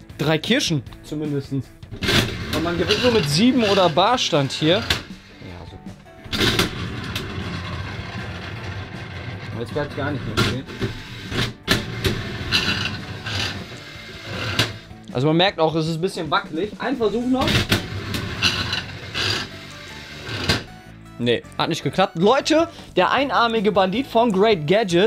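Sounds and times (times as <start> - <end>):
slot machine reels whirring: 2.0 - 5.3, 6.3 - 14.9, 17.5 - 20.7.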